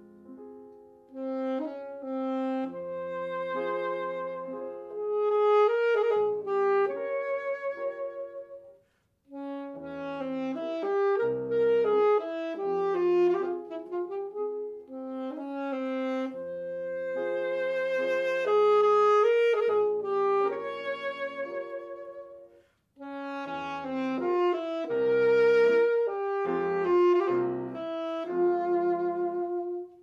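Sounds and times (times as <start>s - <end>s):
piano: 0.0s - 30.0s
saxophone: 1.1s - 30.0s.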